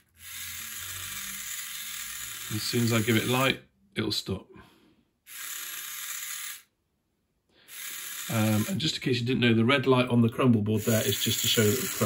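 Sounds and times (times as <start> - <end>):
small motor gear whir: 0.0 - 3.5, 5.3 - 6.7, 7.7 - 8.8, 10.8 - 12.0.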